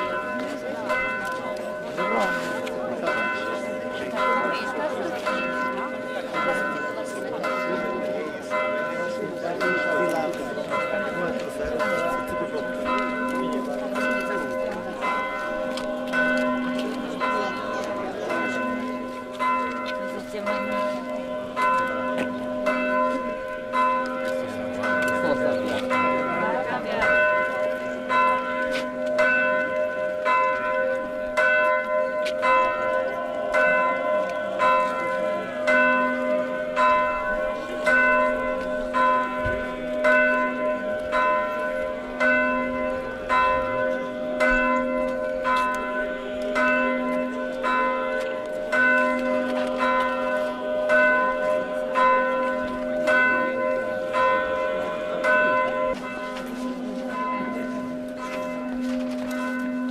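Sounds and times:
low church bell: 0.0 - 59.9
small church bells pealing: 0.0 - 59.9.

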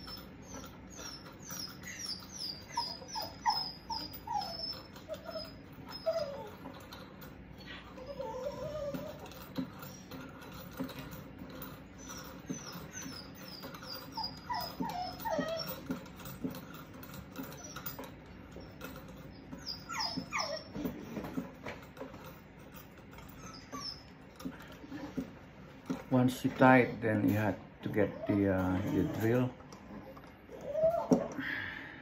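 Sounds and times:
dog whining: 0.0 - 31.8.

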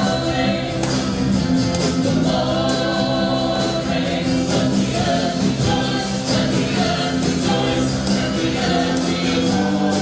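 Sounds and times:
acoustic guitar and band: 0.0 - 10.0
people singing: 0.0 - 10.0.

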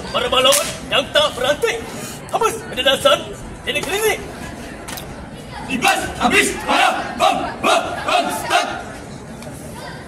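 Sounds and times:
murmuring crowd: 0.0 - 10.0
group shouting a chant: 5.7 - 8.9.

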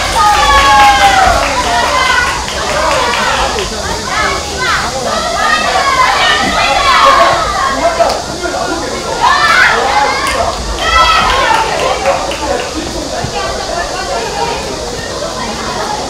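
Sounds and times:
young men shouting: 0.0 - 15.0.

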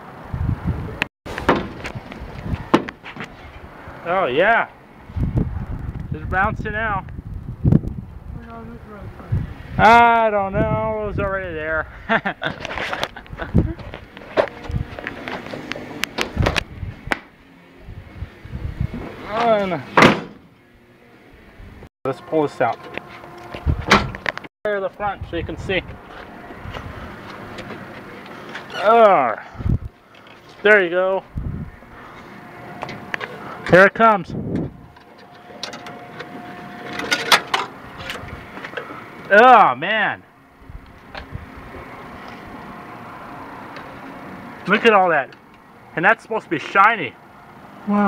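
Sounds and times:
screen door banging shut: 1.4 - 2.0, 19.9 - 20.5, 23.8 - 24.3
clicks and scraping of car part: 26.1 - 28.8, 34.6 - 39.0.

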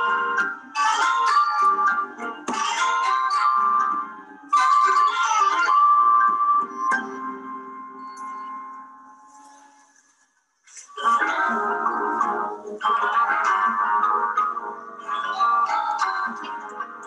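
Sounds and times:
keyboard: 0.0 - 17.0.

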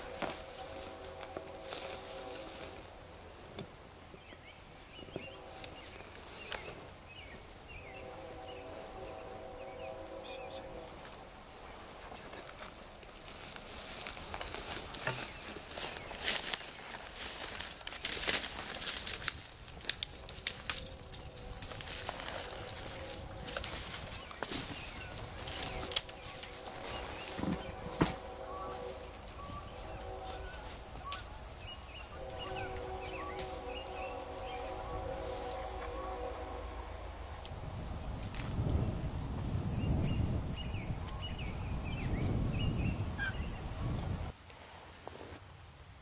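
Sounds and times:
footsteps through dry brush: 0.0 - 3.1, 4.9 - 8.9, 11.0 - 36.6
droning hum: 0.0 - 39.4
twigs snapping: 14.0 - 24.7, 25.4 - 26.9.

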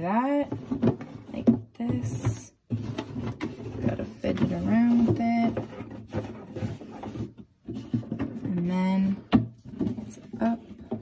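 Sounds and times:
cardboard box rubbing and scraping: 2.1 - 8.9.

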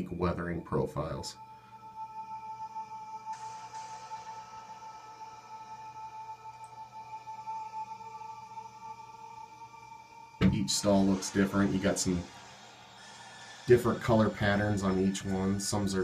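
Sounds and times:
ambient music with sustained tones: 0.0 - 16.0.

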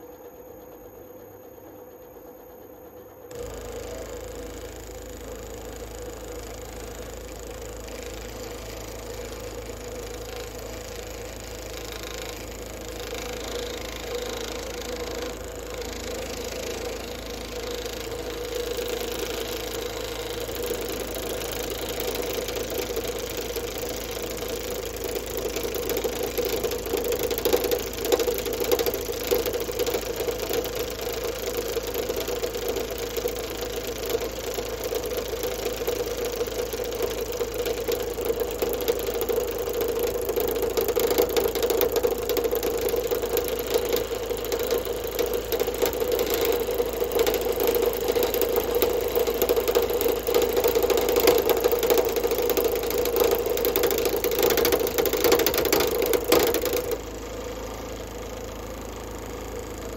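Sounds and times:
wood lathe humming: 3.3 - 57.2.

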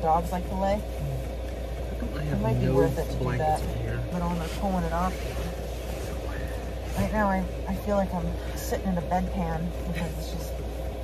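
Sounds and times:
diesel air heater humming: 0.0 - 11.0.

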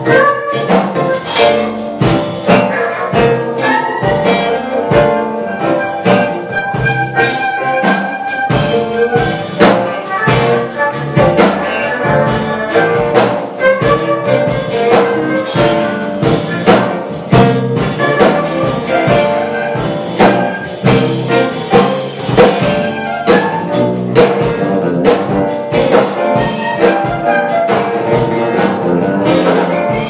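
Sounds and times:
bass guitar: 0.0 - 30.0
drum kit steady beat: 0.0 - 30.0
keyboards: 0.0 - 30.0.

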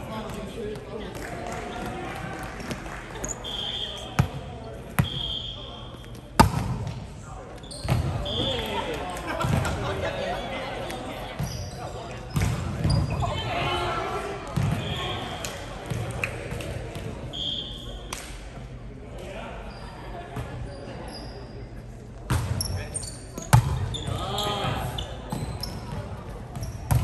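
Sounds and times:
players' voices: 0.0 - 27.0
sneaker squeaks on court: 7.6 - 8.6, 11.4 - 13.3, 22.3 - 26.0, 26.6 - 27.0.

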